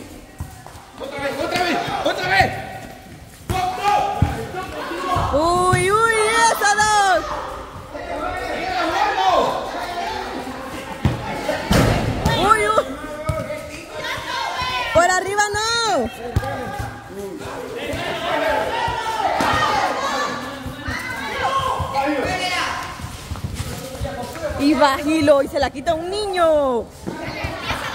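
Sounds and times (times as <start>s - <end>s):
football bouncing on concrete: 3.5s - 7.0s, 11.0s - 17.0s, 20.6s - 26.1s
players shouting: 3.5s - 23.0s.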